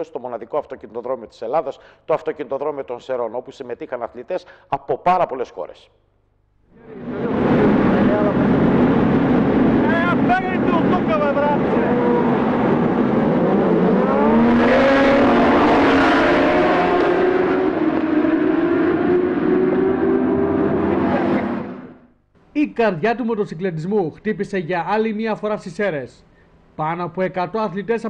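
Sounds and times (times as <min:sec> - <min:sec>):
racing motorcycles accelerating: 0:06.8 - 0:22.0.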